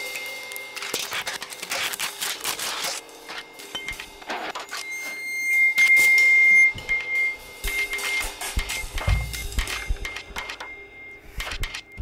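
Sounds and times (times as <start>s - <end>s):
steady high electronic tone: 2.8s - 12.0s.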